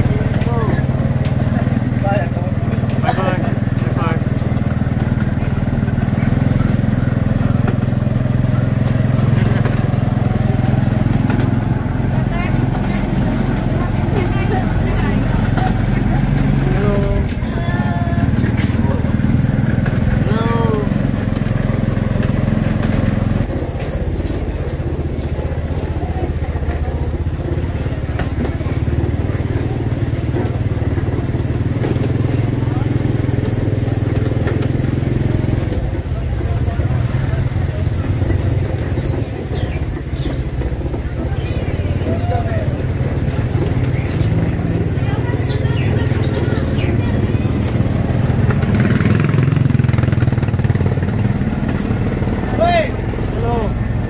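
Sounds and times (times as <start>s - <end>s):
motorcycle engine low drone: 0.0s - 54.0s
people's voices: 0.0s - 54.0s.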